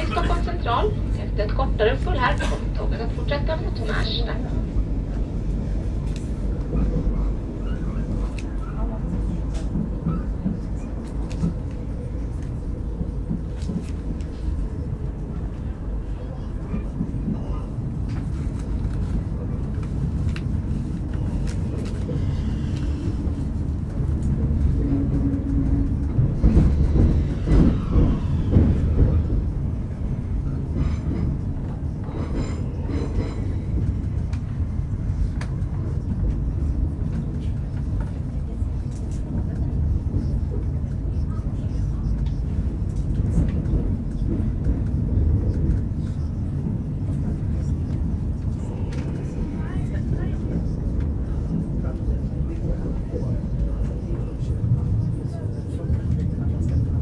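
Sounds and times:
train rumbling inside carriage: 0:00.0 - 0:57.0.

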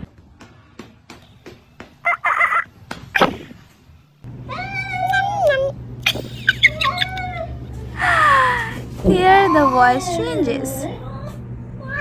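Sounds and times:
steady low hum: 0:00.0 - 0:12.0
cats crying in play-fight: 0:04.5 - 0:05.8, 0:06.4 - 0:08.2, 0:09.1 - 0:12.0.

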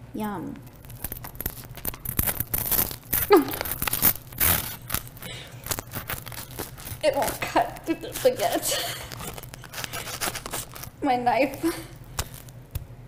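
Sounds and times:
bread knife sawing through toast: 0:05.8 - 0:10.9.

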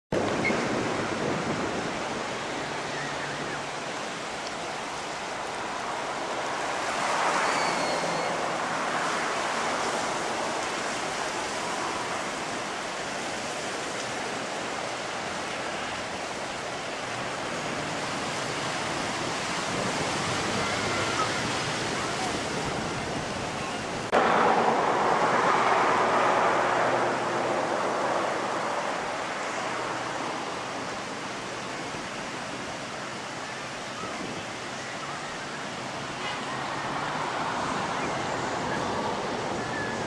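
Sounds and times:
ocean surf on rocky shoreline: 0:00.1 - 0:40.0.

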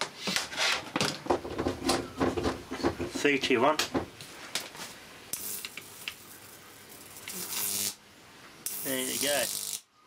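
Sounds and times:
sizzling hiss of arcing: 0:05.3 - 0:08.0, 0:08.6 - 0:09.9.

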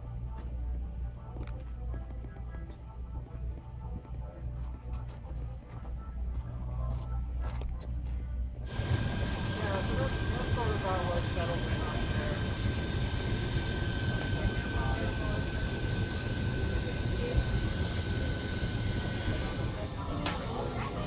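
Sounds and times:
steam venting hiss: 0:08.6 - 0:21.0
people talking: 0:09.1 - 0:12.7, 0:13.4 - 0:21.0.

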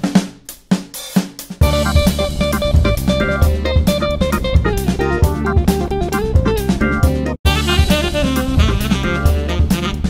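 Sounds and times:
drum kit: 0:00.0 - 0:10.0
bass: 0:01.6 - 0:10.0
guitar: 0:01.6 - 0:10.0.

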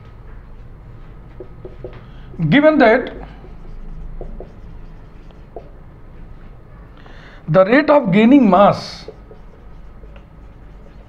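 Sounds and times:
marker writing on whiteboard: 0:01.0 - 0:06.7, 0:08.4 - 0:11.0.

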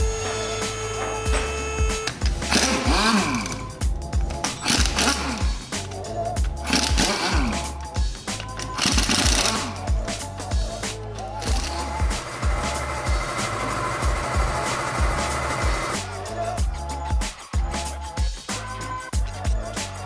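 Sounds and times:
pneumatic impact wrench rattling: 0:00.0 - 0:10.0, 0:11.2 - 0:16.0
background music with steady beat: 0:00.0 - 0:20.0.

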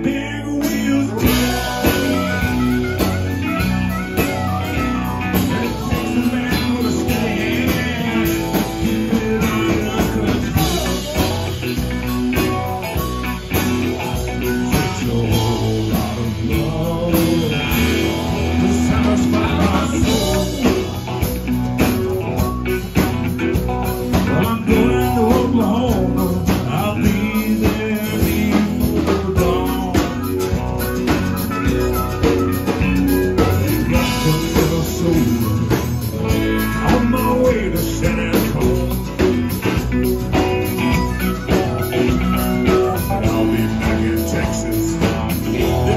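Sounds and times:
acoustic guitar: 0:00.0 - 0:45.9
electric guitar: 0:00.0 - 0:45.9
live band playing blues: 0:00.0 - 0:45.9
man singing: 0:00.0 - 0:45.9.

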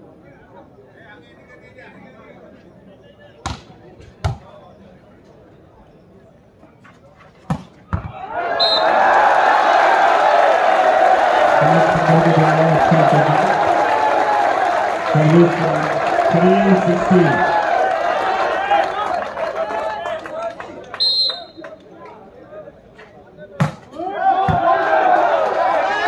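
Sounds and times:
crowd cheering and shouting: 0:08.1 - 0:20.3, 0:24.0 - 0:26.0
men calling out: 0:11.3 - 0:17.8.

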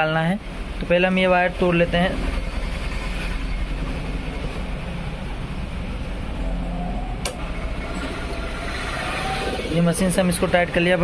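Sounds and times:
machine humming: 0:00.0 - 0:11.0
sharp click: 0:07.2 - 0:07.4.

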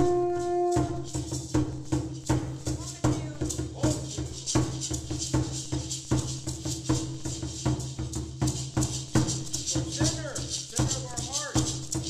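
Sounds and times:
drum beating: 0:00.0 - 0:12.0
hand rattles shaking: 0:00.0 - 0:12.0.

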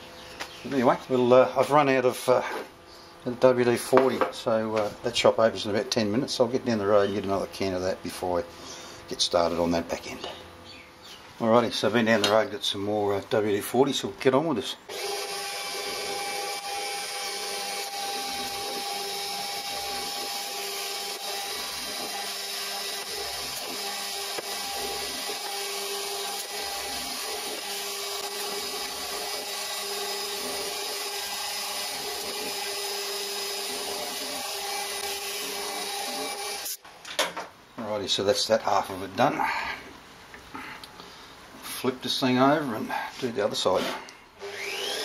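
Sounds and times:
end mill cutting metal: 0:14.9 - 0:36.8, 0:44.4 - 0:45.0
milling machine spindle whine: 0:14.9 - 0:36.8, 0:44.4 - 0:45.0.

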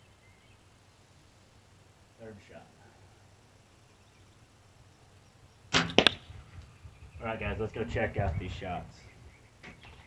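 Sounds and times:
faint low background hum: 0:00.0 - 0:10.0.

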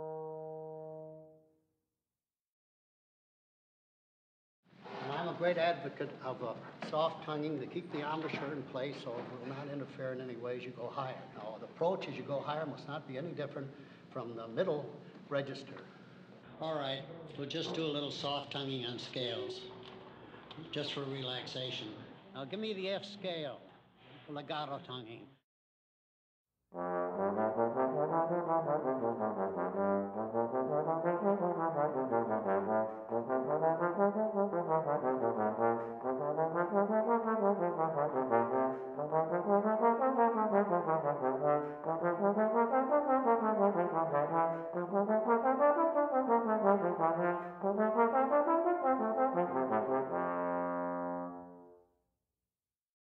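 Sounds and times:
trombone playing scales: 0:00.0 - 0:01.5, 0:26.8 - 0:51.8.

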